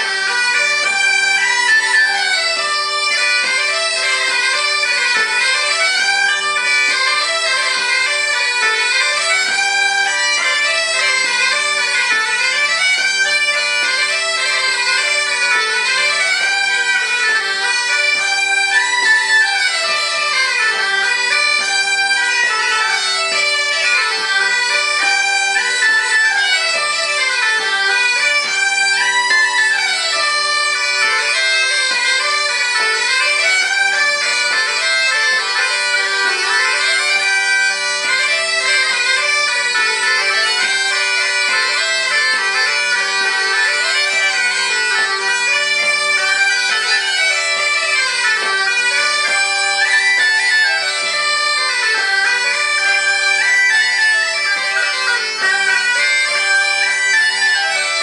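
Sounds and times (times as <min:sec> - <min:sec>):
bagpipe drones: 0:00.0 - 0:58.0
bagpipes playing a dance tune: 0:00.0 - 0:58.0.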